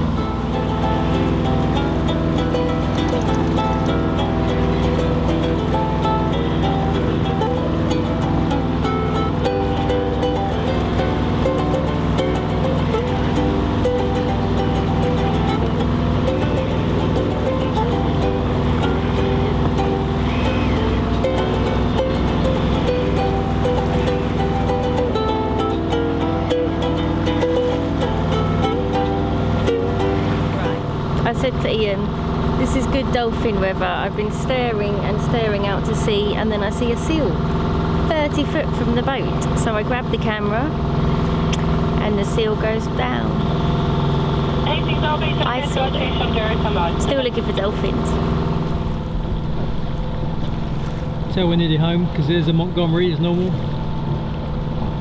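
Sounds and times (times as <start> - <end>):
ukulele strumming: 0.0 - 51.3
boat engine drone: 0.0 - 55.0.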